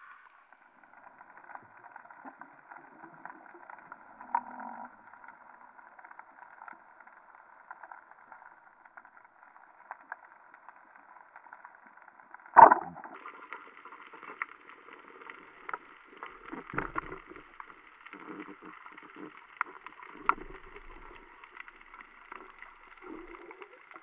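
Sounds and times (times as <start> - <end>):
faint clicks and crackles: 0.0 - 24.0
muffled underwater hiss: 13.0 - 24.0.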